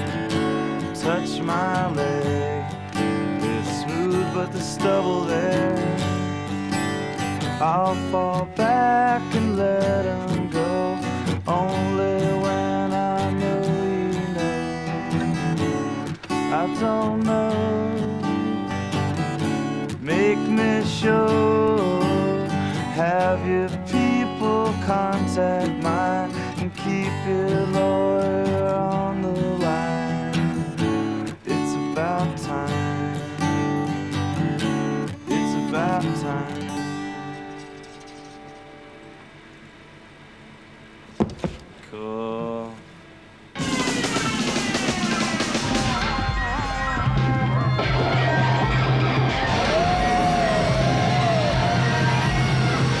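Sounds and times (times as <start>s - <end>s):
acoustic guitar strumming: 0.0s - 40.1s, 40.9s - 53.0s.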